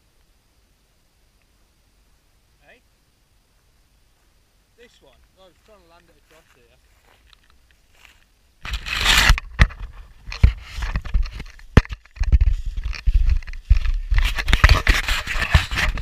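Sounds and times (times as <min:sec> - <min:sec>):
scraping and rubbing on airframe: 0:08.6 - 0:16.0.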